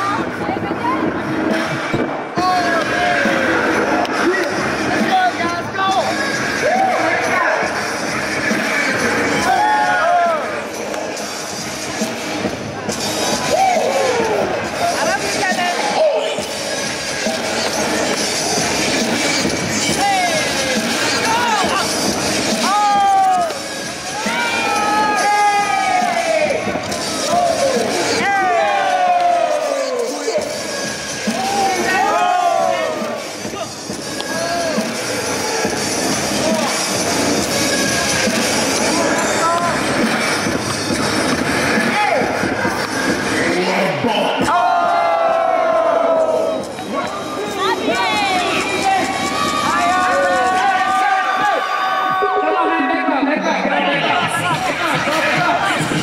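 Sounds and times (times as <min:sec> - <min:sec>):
crowd noise: 0:00.0 - 0:56.0.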